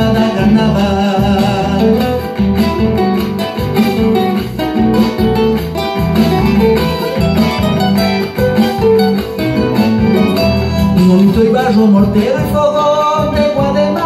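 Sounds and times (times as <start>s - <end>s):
plucked acoustic guitar: 0.0s - 14.0s.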